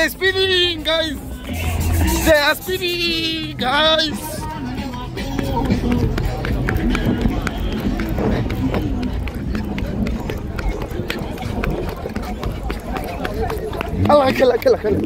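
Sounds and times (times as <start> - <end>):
crowd voices: 0.0 - 15.0
running footsteps: 0.0 - 15.0
wind noise on microphone: 4.2 - 15.0.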